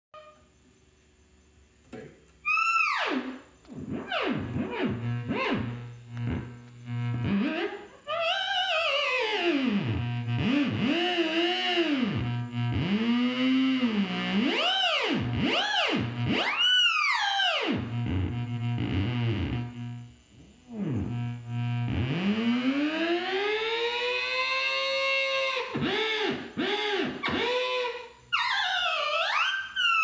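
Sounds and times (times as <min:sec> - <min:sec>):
theremin tone swooping: 0:02.4 - 0:19.9
steady low hum: 0:03.2 - 0:08.2, 0:12.0 - 0:14.4, 0:17.8 - 0:28.4.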